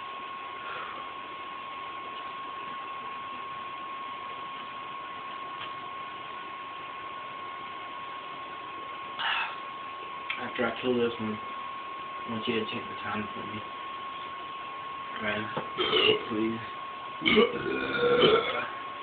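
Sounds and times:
thin high whine: 0.0 - 19.0.

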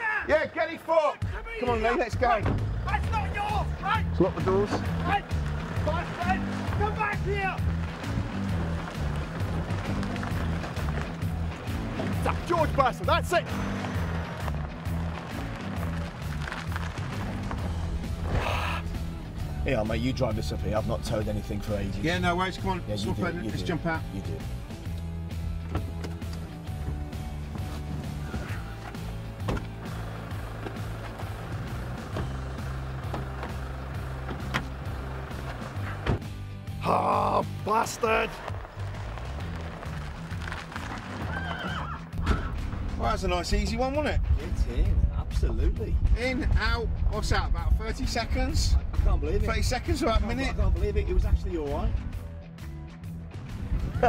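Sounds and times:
background music with bass line: 1.2 - 54.0
horse whinnying: 40.9 - 42.6.

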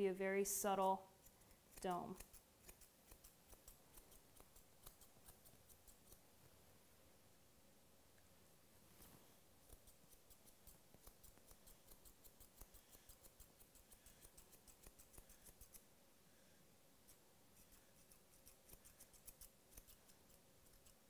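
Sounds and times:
shears snipping dog fur: 0.8 - 6.2, 9.0 - 15.9, 17.0 - 21.0.

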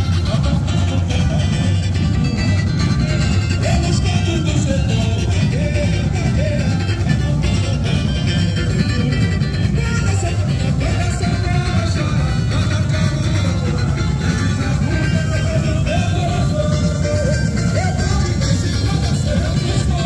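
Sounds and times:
dense samba drumming: 0.0 - 20.0
person singing: 0.0 - 20.0.

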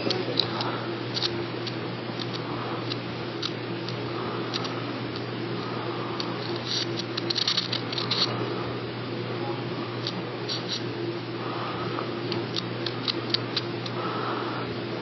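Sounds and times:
wire scratching on spinning disc: 0.0 - 8.8, 9.8 - 14.8
steady low hum: 0.0 - 15.0.

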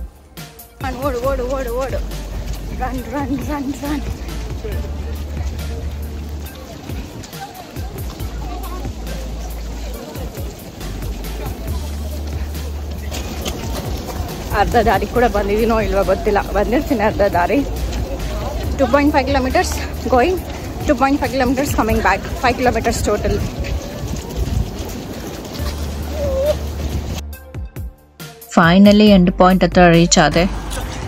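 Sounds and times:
footsteps clicking: 0.0 - 27.2
background music: 0.0 - 31.0
wind buffeting microphone: 0.8 - 27.2.

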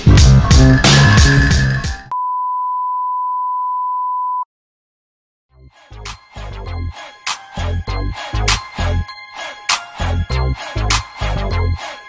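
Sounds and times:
background music with strong beat: 0.0 - 2.1, 6.0 - 12.0.

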